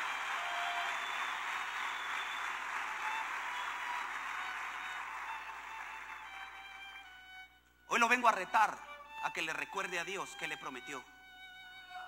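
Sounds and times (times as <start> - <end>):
congregation applauding: 0.0 - 7.1.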